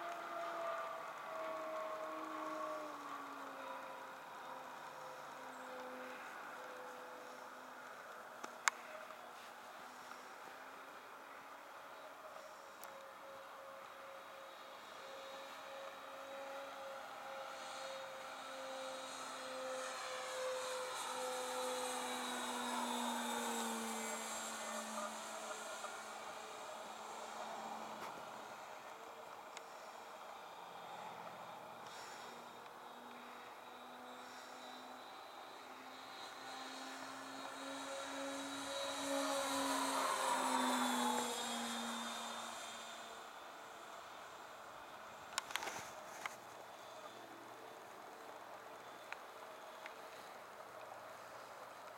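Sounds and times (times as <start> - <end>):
model airplane motors humming: 0.0 - 51.9.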